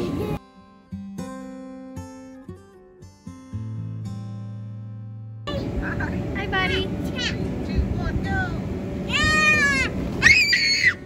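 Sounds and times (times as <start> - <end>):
steady low noise: 5.5 - 10.1
toddler squealing: 9.1 - 11.0.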